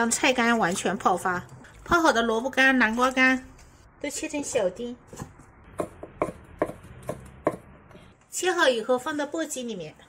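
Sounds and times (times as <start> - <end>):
cleaver chopping on wooden block: 5.8 - 7.7.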